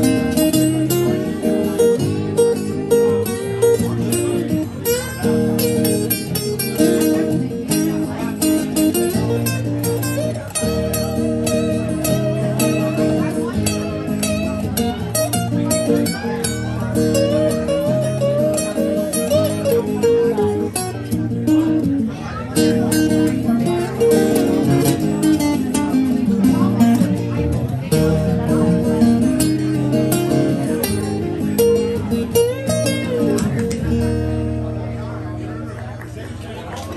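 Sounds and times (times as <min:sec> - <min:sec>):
acoustic guitar through speaker: 0:00.0 - 0:36.9.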